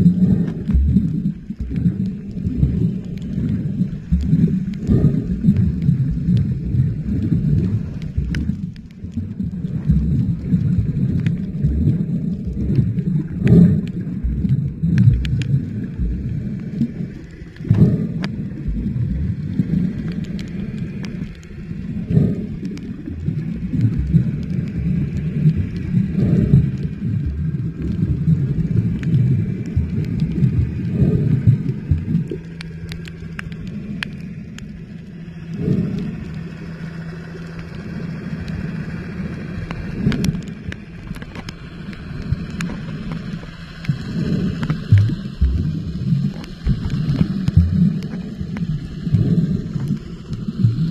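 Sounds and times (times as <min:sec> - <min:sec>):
underwater water rumble: 0:00.0 - 0:50.9
faint clicks: 0:00.2 - 0:36.8, 0:39.6 - 0:50.9.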